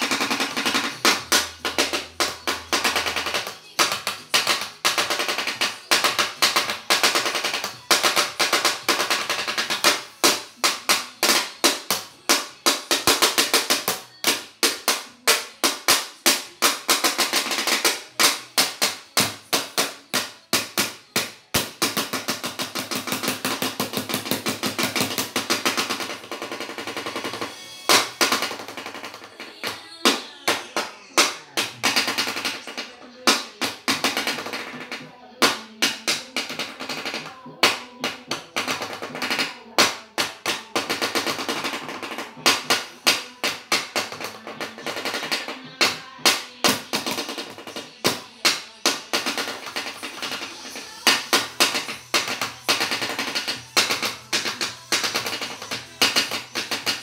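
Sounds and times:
drumsticks hitting a flat surface: 0.0s - 57.0s.

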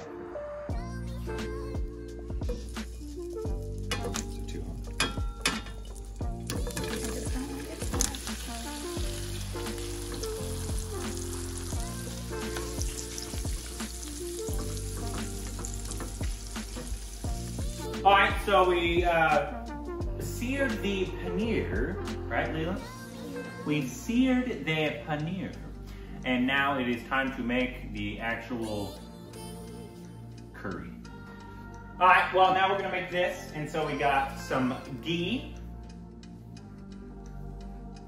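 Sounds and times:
cheese sizzling in hot oil: 5.4s - 17.9s.

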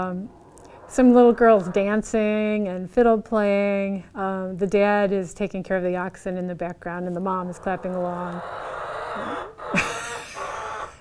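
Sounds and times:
low background hiss: 0.0s - 8.4s
hen's raspy call: 7.6s - 11.0s.

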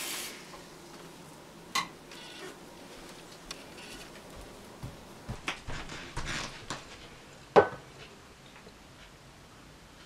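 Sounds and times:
footsteps on wooden floor: 2.9s - 7.2s.

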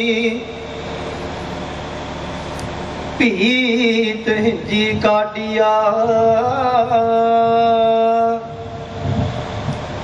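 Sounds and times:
rushing hiss-like noise: 8.4s - 10.0s.

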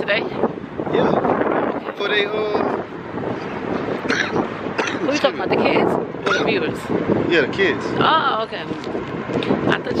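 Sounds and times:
passing traffic: 0.0s - 10.0s
voices: 0.0s - 10.0s
wind on microphone: 0.0s - 10.0s.

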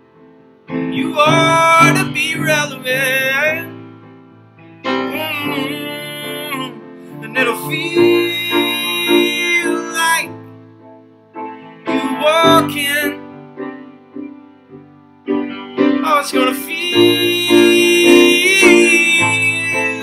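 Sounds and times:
instrumental accompaniment: 0.0s - 20.0s
man singing: 0.9s - 3.8s, 5.0s - 10.5s, 11.9s - 13.3s, 16.0s - 20.0s.

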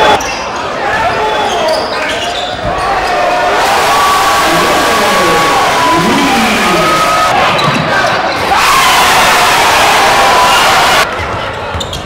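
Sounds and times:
crowd and player voices echoing: 0.0s - 12.0s.

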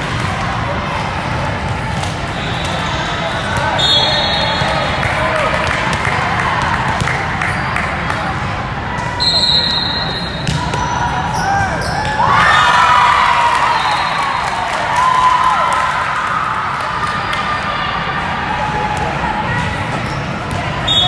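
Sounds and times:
players shouting and cheering: 0.0s - 21.0s
referee's whistle: 2.4s - 4.9s, 9.2s - 10.9s.

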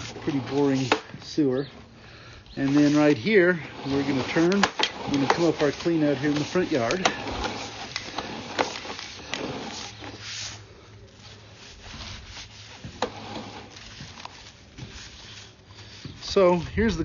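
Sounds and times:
cable scraping in pipe: 0.0s - 17.0s.

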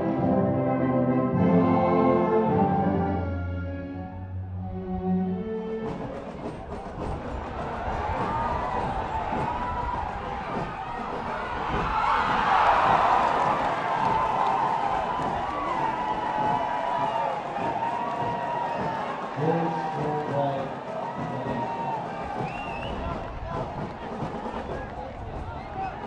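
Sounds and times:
stadium crowd shouting and cheering: 5.8s - 26.0s.

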